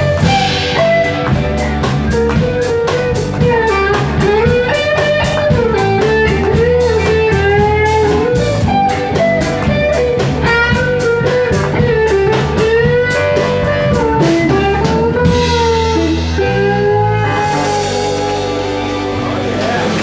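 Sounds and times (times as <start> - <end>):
bending lead guitar melody: 0.0 - 20.0
live blues-rock band playing: 0.0 - 20.0.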